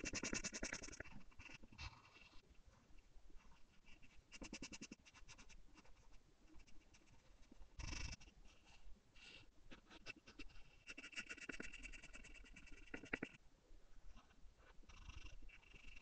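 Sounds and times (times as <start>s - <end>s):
pencil scratching on paper: 0.0s - 2.4s, 3.6s - 8.8s, 9.7s - 13.4s.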